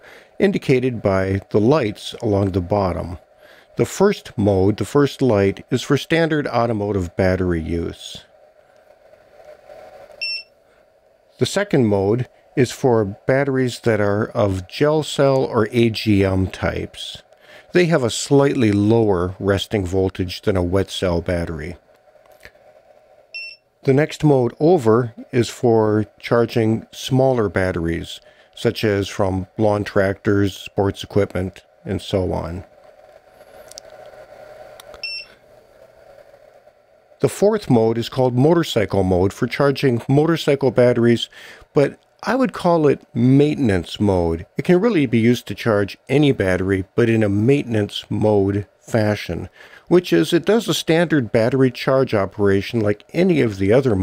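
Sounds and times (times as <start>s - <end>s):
small cooling fan humming: 0.0s - 54.0s
high electronic beep: 10.2s - 10.5s, 23.4s - 23.6s, 35.0s - 35.3s.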